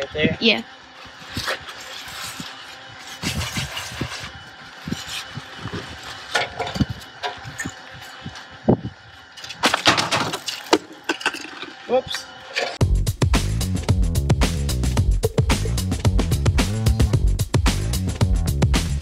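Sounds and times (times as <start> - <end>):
plaster scraping and rustling: 1.0 - 8.4.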